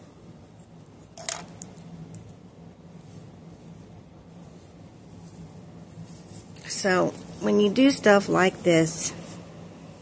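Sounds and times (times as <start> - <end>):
wig rustling: 2.9 - 9.6.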